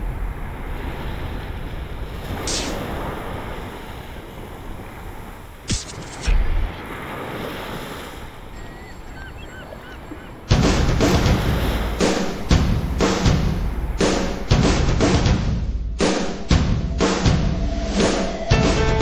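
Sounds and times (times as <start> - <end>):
wind buffeting microphone: 0.0 - 10.6
surf washing onto beach: 0.0 - 14.6
faint chirps: 8.5 - 10.4.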